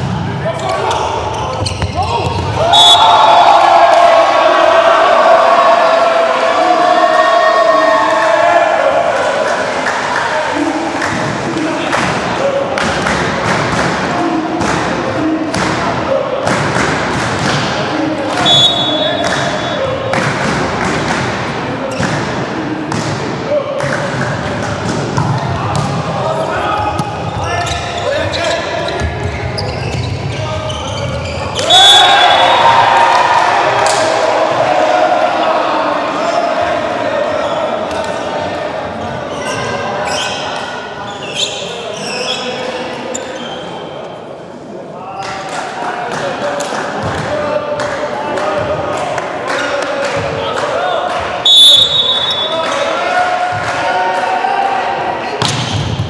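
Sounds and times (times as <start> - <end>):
people shouting and cheering: 0.0 - 29.7, 30.3 - 42.8, 45.0 - 56.0
ball bouncing on court floor: 1.5 - 2.6, 55.4 - 56.0
referee's whistle: 2.6 - 3.5, 18.4 - 19.8, 31.6 - 32.8, 51.4 - 52.6.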